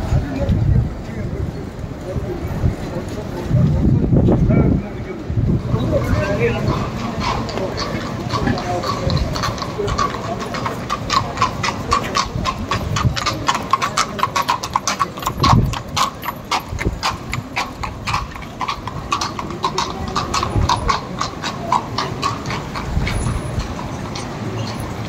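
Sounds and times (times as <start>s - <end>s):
horse hooves clip-clopping on pavement: 0.0s - 25.0s.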